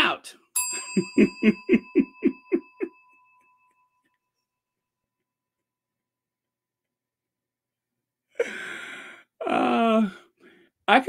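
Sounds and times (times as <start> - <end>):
bright bell-like chime: 0.6 - 5.5
man laughing: 0.8 - 3.0.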